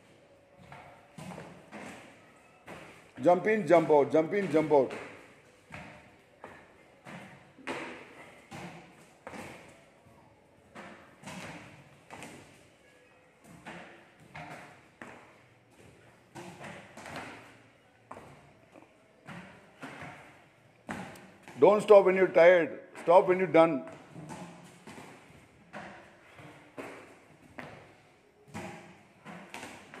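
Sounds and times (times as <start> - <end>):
sneakers thudding on concrete floor: 0.6 - 12.6, 13.4 - 21.8, 23.7 - 30.0.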